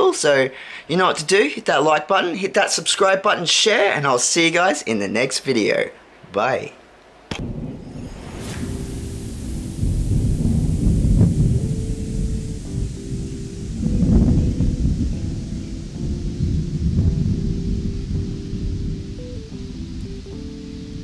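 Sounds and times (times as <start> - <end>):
thunder rumbling: 7.3 - 21.0
slow held-note music: 8.4 - 21.0.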